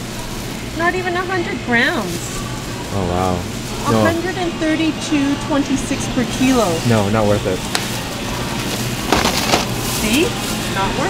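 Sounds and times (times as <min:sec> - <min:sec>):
plastic crinkling and rustling: 0:00.0 - 0:04.5, 0:06.5 - 0:11.0.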